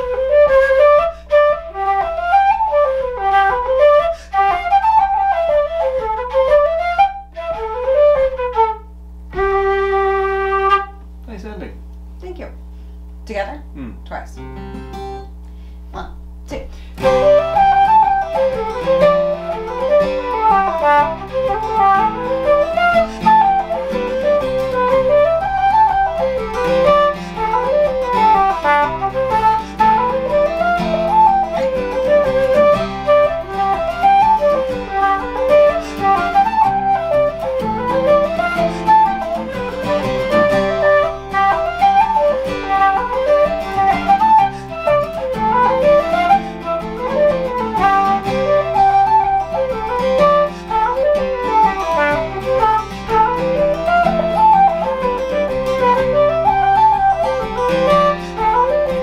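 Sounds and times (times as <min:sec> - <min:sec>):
strummed acoustic guitar: 0:00.0 - 0:11.0, 0:13.8 - 0:15.8, 0:16.8 - 0:59.0
wooden flute playing jig: 0:00.0 - 0:11.1, 0:17.0 - 0:59.0.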